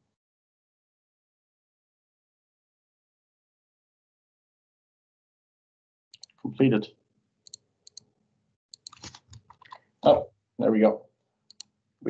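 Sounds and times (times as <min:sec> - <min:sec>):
computer mouse clicks: 0:06.2 - 0:06.5, 0:07.4 - 0:08.1, 0:08.7 - 0:09.9, 0:11.5 - 0:11.8.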